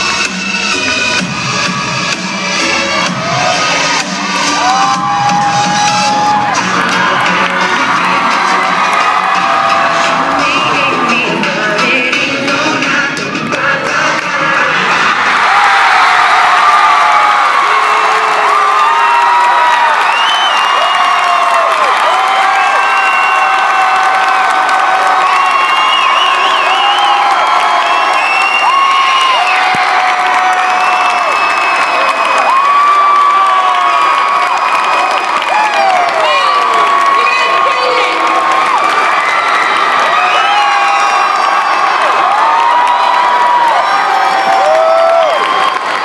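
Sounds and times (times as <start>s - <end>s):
music: 0.0s - 15.4s
crowd cheering and screaming: 1.2s - 12.9s, 13.9s - 46.0s.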